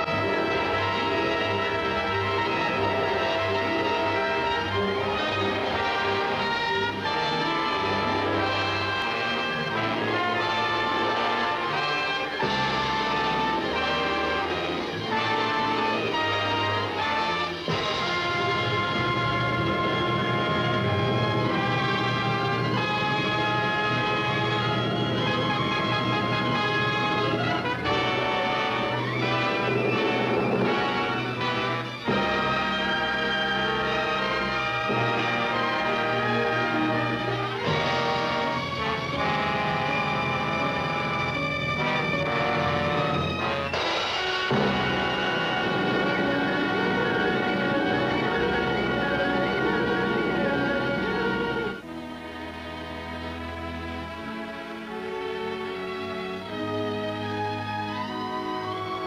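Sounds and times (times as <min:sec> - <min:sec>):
orchestral music with brass: 0:00.0 - 0:59.0.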